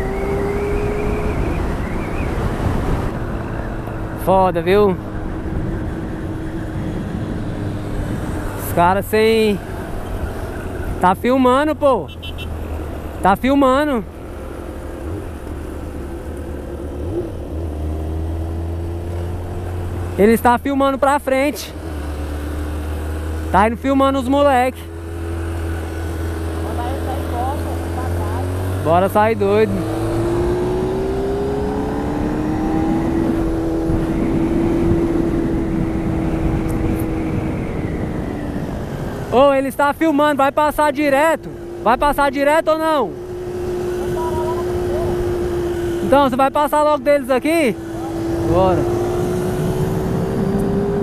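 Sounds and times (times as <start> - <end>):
wind rushing over microphone: 0.0 - 11.2, 27.8 - 40.7, 47.6 - 51.0
motorcycle engine pulling hard: 41.2 - 51.0
motorcycle engine running: 43.1 - 46.3.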